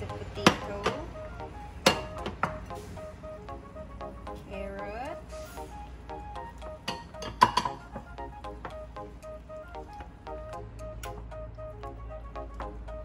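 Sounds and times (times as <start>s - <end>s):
upbeat background music: 0.0s - 13.0s
ceramic bowl clinking: 6.8s - 7.8s.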